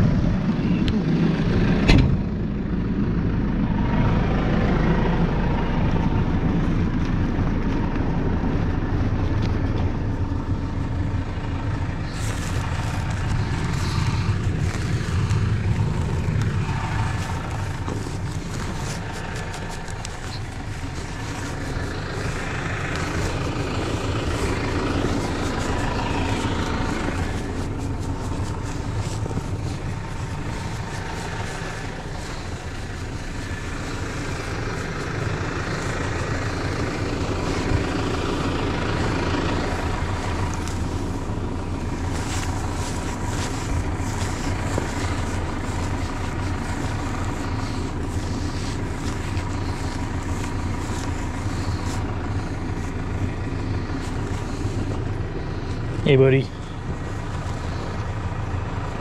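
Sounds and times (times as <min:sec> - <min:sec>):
tractor diesel engine idling: 0:00.0 - 0:59.0
rustling and crunching: 0:08.8 - 0:59.0.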